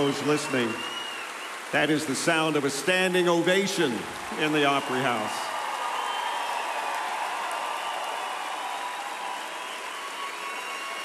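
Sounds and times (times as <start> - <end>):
audience applause: 0.0 - 11.0.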